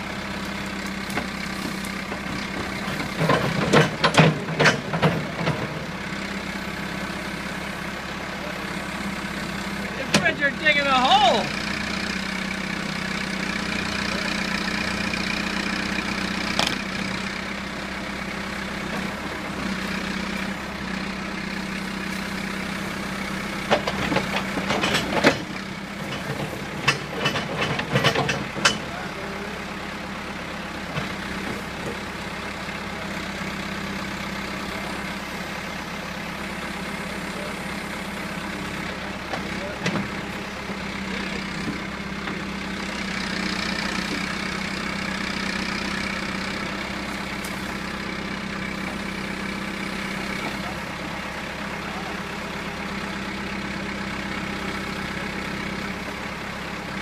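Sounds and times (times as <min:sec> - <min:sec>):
diesel engine running: 0:00.0 - 0:57.0
sharp metal clanks and knocks: 0:26.1 - 0:28.9.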